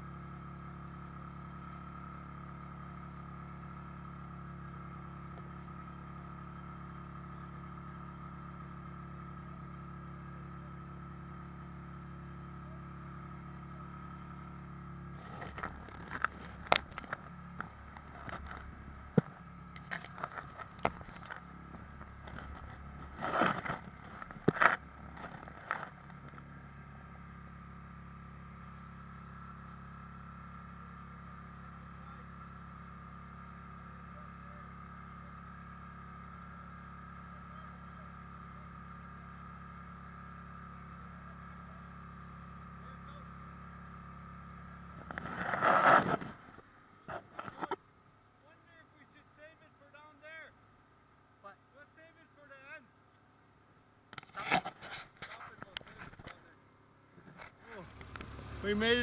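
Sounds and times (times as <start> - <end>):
snowmobile engine idling: 0.0 - 59.0.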